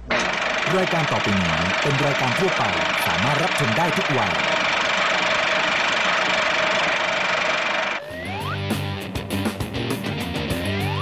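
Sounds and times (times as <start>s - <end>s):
person speaking announcement: 0.6s - 4.6s.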